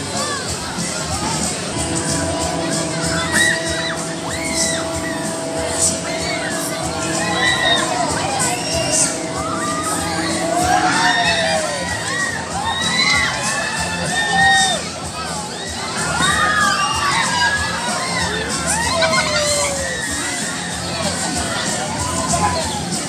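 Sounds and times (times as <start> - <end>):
riders screaming and shouting: 0.0 - 23.0.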